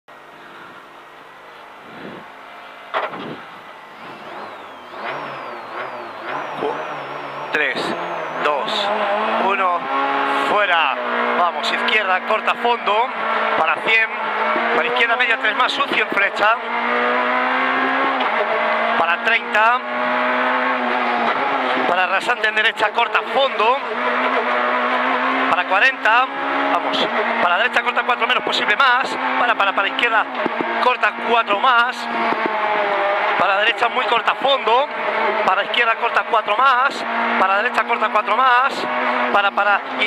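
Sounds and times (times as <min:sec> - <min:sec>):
car engine idling and revving: 0:00.1 - 0:40.0.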